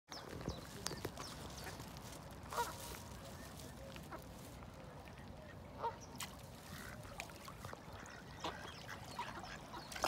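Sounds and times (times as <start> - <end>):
outdoor background noise: 0.1 - 10.0
mallard duck calls: 2.5 - 2.8.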